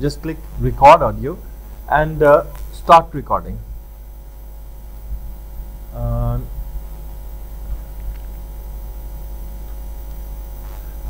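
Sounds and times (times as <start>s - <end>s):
low mains hum: 0.0s - 11.0s.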